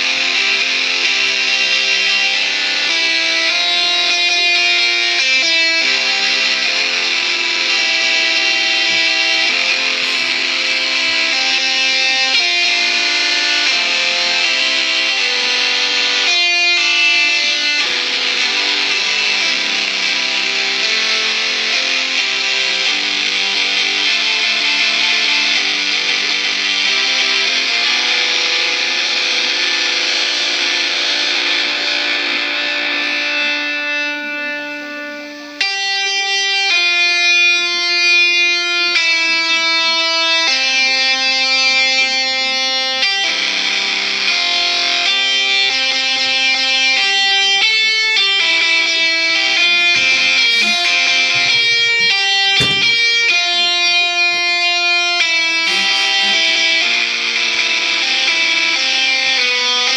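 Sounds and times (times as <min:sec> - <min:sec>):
guitar chords through phone speaker: 0:00.0 - 0:59.9.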